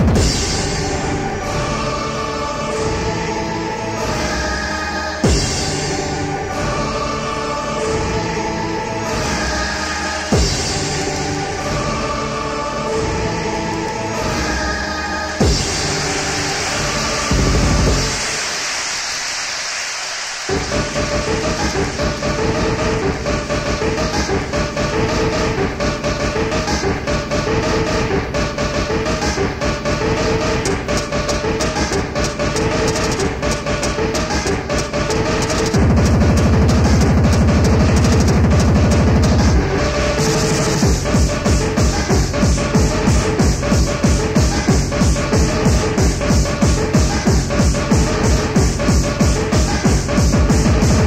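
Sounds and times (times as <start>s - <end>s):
fast kick drum: 0.0s - 0.6s, 15.4s - 15.8s, 30.7s - 39.7s, 40.8s - 51.0s
hardcore techno dj mix: 0.0s - 51.0s
heavy bass: 0.0s - 51.0s.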